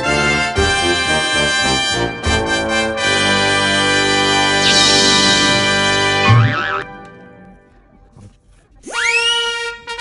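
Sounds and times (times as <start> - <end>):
wobbling boing sound effect: 6.2 - 6.9.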